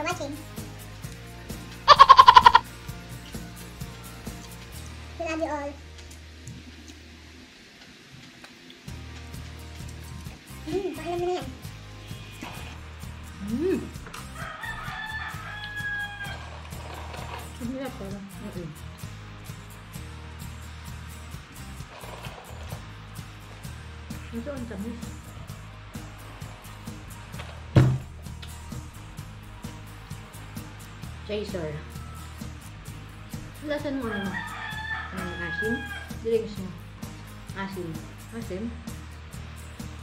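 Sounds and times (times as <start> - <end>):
background music: 0.0 - 7.7, 8.6 - 40.0
rooster crowing: 1.9 - 2.6, 14.2 - 16.7, 34.0 - 36.2.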